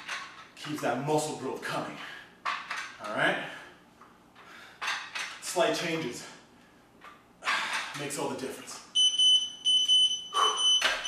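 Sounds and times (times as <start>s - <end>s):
high-pitched timer beeps: 9.0s - 11.0s.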